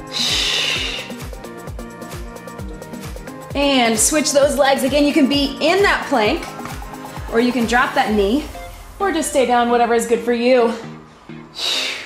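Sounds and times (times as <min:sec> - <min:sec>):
upbeat music with kick drum: 0:00.0 - 0:11.1.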